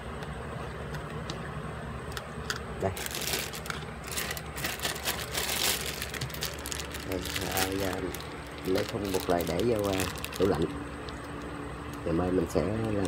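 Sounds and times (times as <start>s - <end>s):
steady low hum: 0.0s - 13.0s
plastic bag crinkling: 2.8s - 12.1s.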